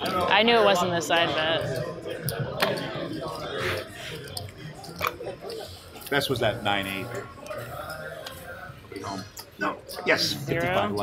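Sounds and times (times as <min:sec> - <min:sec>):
murmur of background voices: 0:00.0 - 0:11.0.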